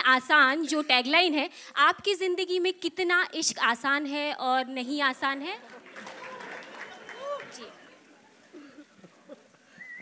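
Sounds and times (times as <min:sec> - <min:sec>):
faint murmur of crowd: 0:05.4 - 0:10.0.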